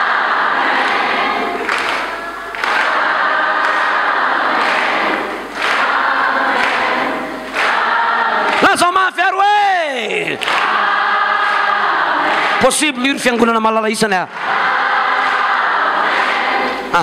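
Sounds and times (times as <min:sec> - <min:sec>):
congregation singing and calling: 0:00.0 - 0:17.0
man's amplified voice: 0:08.6 - 0:10.4, 0:12.6 - 0:14.4.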